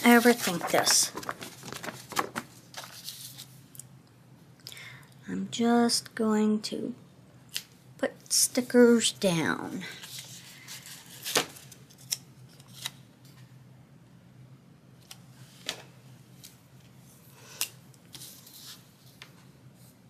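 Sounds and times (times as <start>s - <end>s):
paper sheets rustling: 0.0s - 3.6s, 10.0s - 13.0s
faint steady hum: 0.0s - 20.0s.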